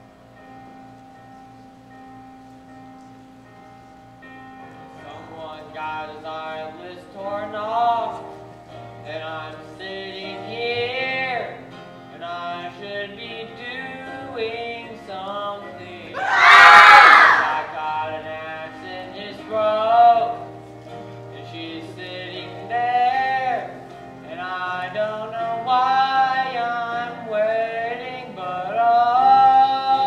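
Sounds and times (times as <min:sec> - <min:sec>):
musical theatre singing: 0:09.0 - 0:20.5.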